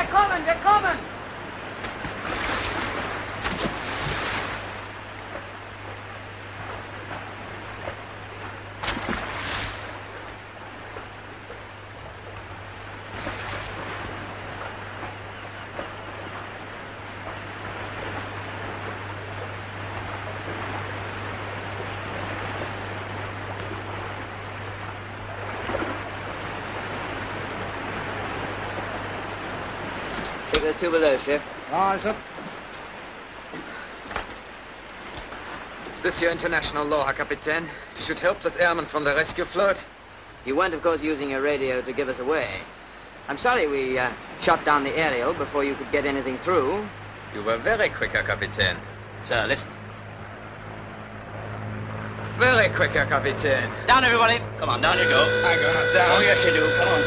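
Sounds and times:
sea water splashing against hull: 0.0 - 57.0.

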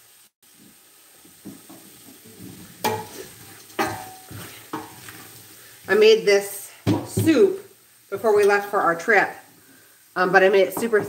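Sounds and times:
onions sizzling in a pot: 0.0 - 11.0
metal clanking against pot: 2.8 - 5.0.

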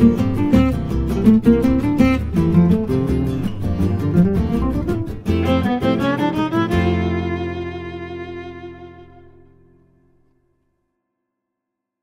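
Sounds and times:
strummed guitar chords: 0.0 - 10.2
violin run: 5.3 - 9.6.

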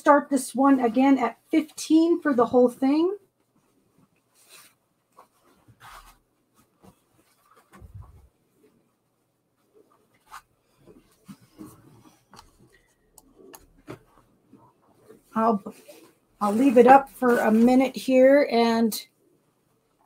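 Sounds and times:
fabric rustling and rubbing: 0.7 - 18.4
soft brushes and taps: 1.0 - 17.9.

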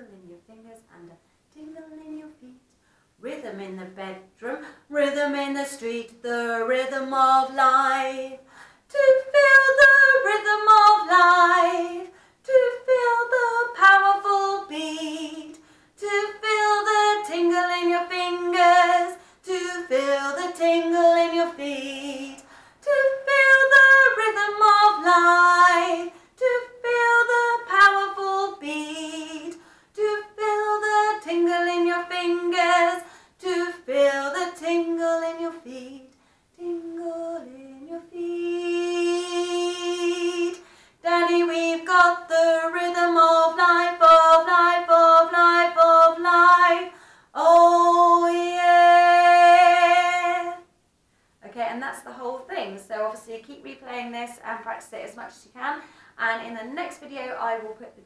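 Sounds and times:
woman singing unaccompanied: 0.0 - 50.7, 51.4 - 58.0.

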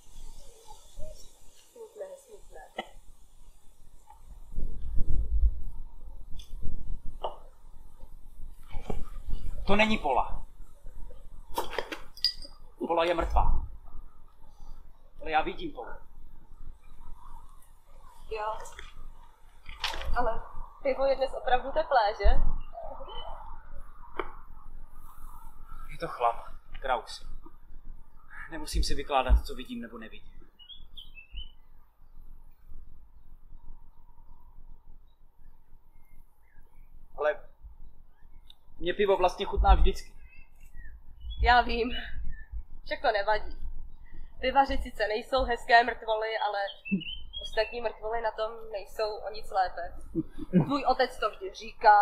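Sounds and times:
low outdoor background noise: 0.0 - 52.0
glass bottles clinking: 12.2 - 12.6
short bird chirps: 40.2 - 41.4, 46.7 - 47.6.

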